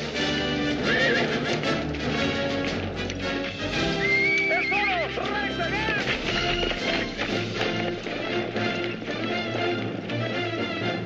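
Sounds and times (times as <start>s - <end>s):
background film music: 0.0s - 11.0s
horse whinnying: 0.4s - 1.6s.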